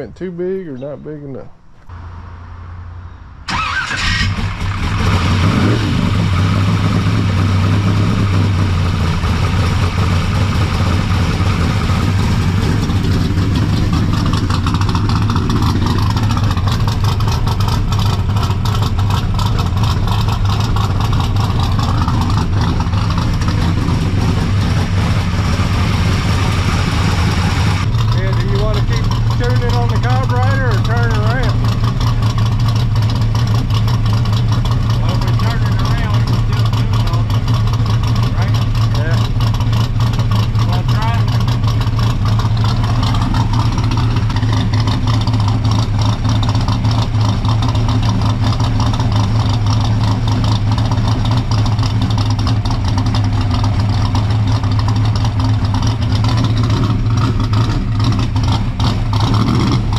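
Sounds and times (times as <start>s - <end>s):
car engine starting and idling: 0.0s - 59.9s.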